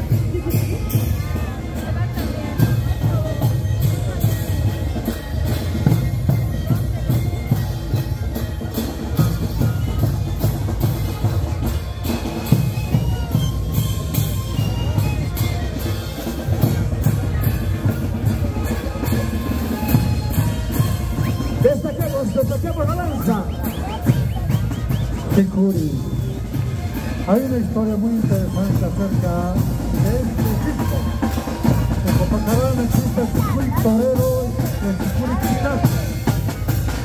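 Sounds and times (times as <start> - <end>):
panpipes holding tones: 0.0 - 37.0
large drums beating: 23.5 - 37.0.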